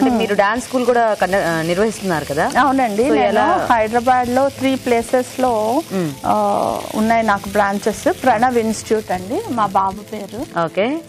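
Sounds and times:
woman talking: 0.0s - 5.6s, 6.2s - 11.0s
pan sizzling: 0.0s - 11.0s.

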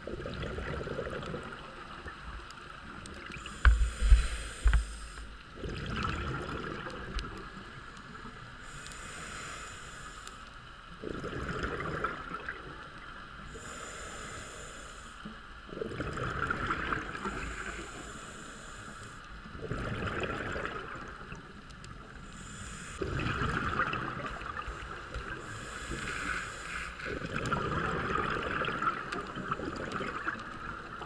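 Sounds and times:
exhaled bubbles bursting: 0.0s - 1.6s, 5.6s - 7.2s, 11.0s - 12.7s, 15.7s - 17.2s, 19.6s - 21.3s, 23.0s - 24.7s, 27.1s - 31.0s
scuba regulator hiss: 3.4s - 5.2s, 8.6s - 10.4s, 13.5s - 15.2s, 17.2s - 19.2s, 22.2s - 23.0s, 25.4s - 27.0s.

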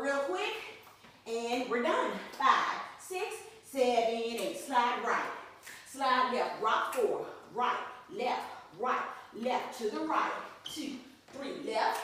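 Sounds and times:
woman calling out dance counts: 0.0s - 12.0s.

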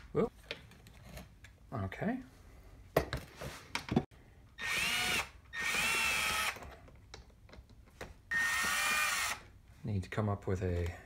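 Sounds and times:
drill motor whine: 8.3s - 9.4s.

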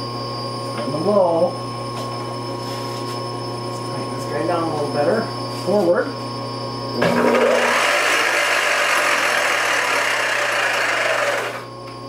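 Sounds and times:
milling machine spindle running roughly: 7.0s - 11.7s.

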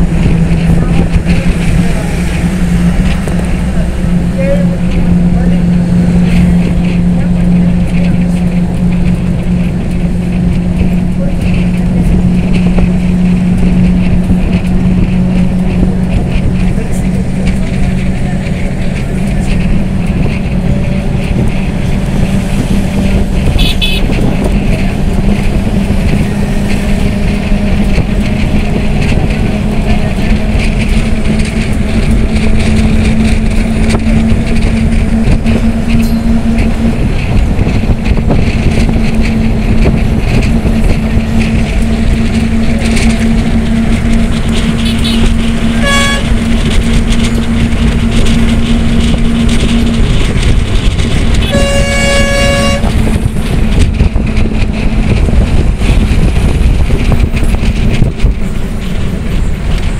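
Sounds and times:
tyre and wind rumble: 0.0s - 59.9s
vehicle engine drone: 0.0s - 59.9s.

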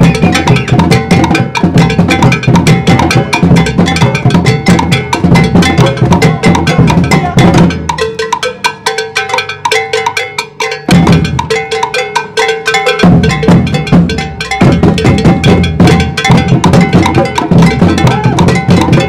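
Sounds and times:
deep bass drums: 0.0s - 8.0s, 13.1s - 19.0s
djembe strokes: 0.0s - 9.9s, 10.5s - 19.0s.

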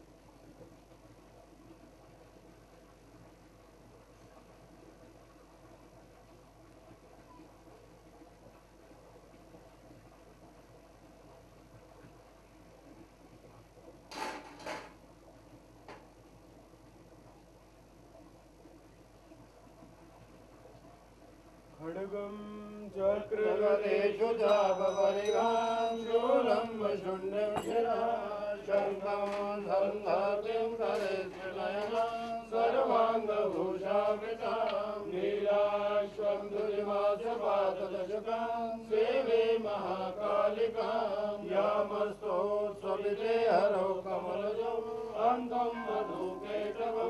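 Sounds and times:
man chanting mantras: 21.8s - 33.3s.

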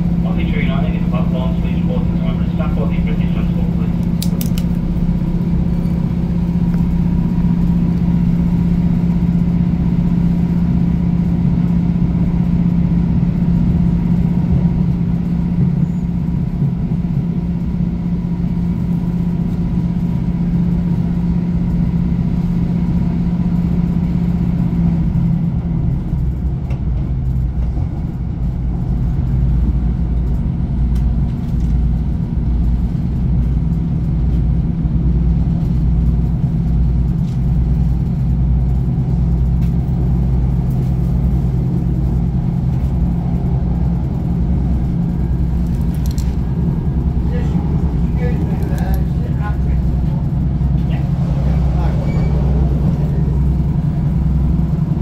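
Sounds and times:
low pulsing rumble: 0.0s - 55.0s
train diesel engine hum: 0.0s - 55.0s
wheel and rail rumble: 0.0s - 55.0s.

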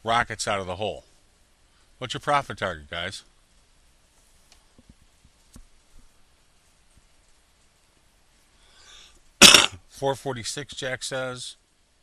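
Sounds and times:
faint intake of breath: 8.5s - 9.2s
man coughing: 9.4s - 9.7s.

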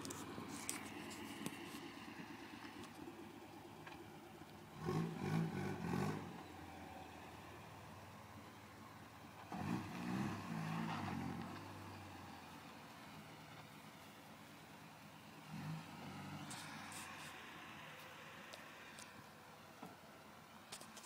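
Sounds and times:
distant car engine revving: 0.0s - 14.0s, 15.1s - 20.0s.

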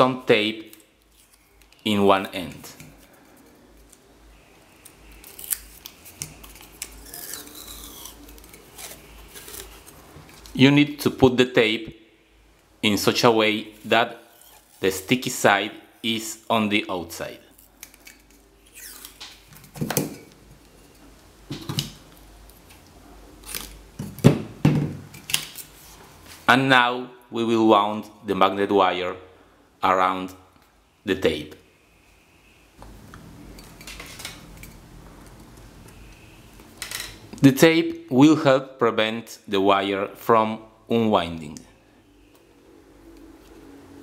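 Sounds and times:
adhesive tape crackling: 0.6s - 1.9s, 2.5s - 10.6s, 13.7s - 15.2s, 17.4s - 19.5s, 22.1s - 23.8s.

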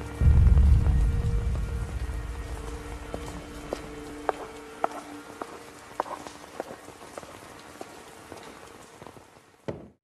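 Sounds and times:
steady rain: 0.0s - 9.8s.

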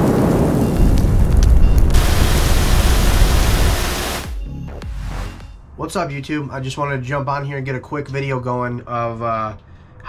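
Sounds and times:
deep rumbling burst: 0.0s - 4.5s
bright hissing spray: 1.9s - 4.4s.

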